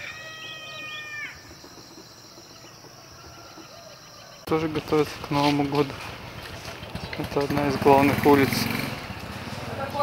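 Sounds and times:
rooster crowing: 0.0s - 1.5s, 2.8s - 4.4s
high insect drone: 0.0s - 4.8s.

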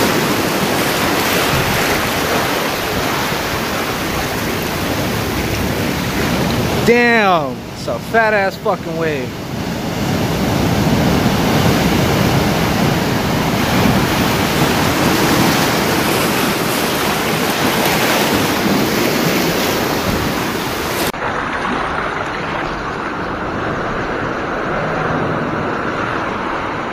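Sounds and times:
ocean surf breaking over rocks: 0.0s - 26.9s.

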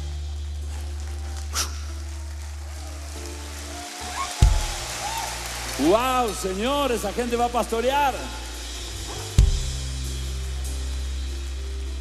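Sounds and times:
keyboard pad chords with bass: 0.0s - 3.7s, 6.2s - 12.0s.

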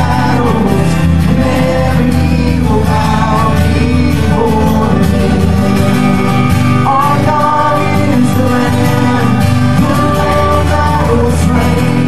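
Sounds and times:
electric guitar: 0.0s - 12.0s
worship band playing: 0.0s - 12.0s.

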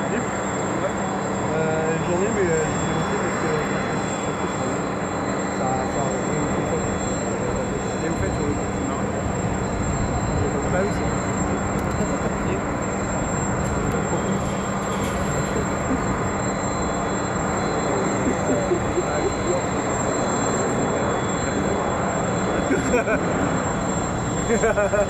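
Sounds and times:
fighter jet rushing rumble: 0.0s - 25.0s.

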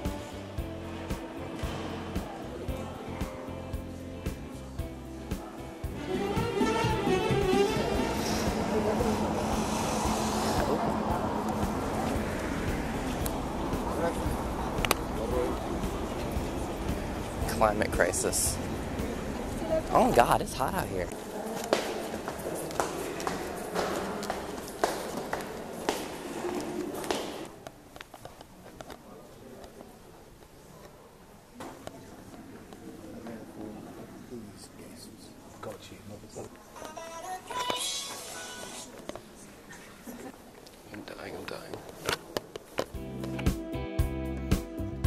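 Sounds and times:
murmur of voices: 0.0s - 43.0s
footsteps on stone stairs: 21.5s - 27.5s.

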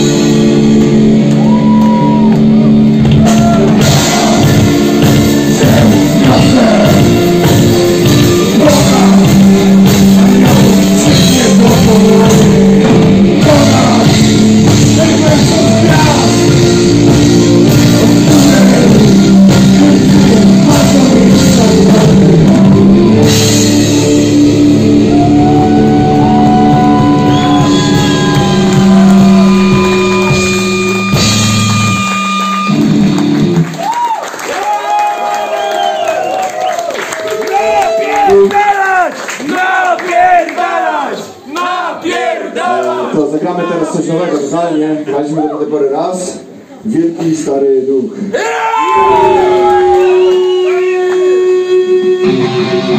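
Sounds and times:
bending lead guitar line: 0.0s - 33.7s, 48.9s - 52.9s
distorted electric guitars: 0.0s - 33.8s, 48.9s - 52.9s
drum kit: 0.0s - 36.6s.

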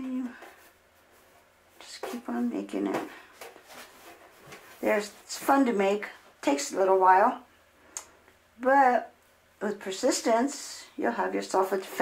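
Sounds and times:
rustling handling noise: 0.2s - 6.2s.

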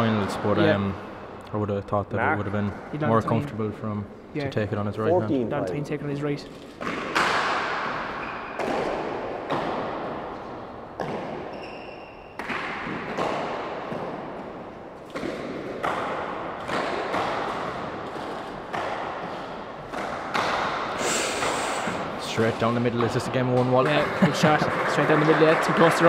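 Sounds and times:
ball cracking off walls with echo: 6.7s - 26.0s.

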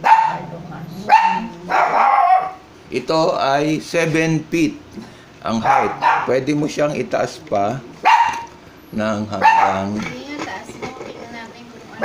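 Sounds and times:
dog barking: 0.0s - 2.7s, 5.6s - 6.4s, 8.0s - 8.5s, 9.4s - 10.0s.

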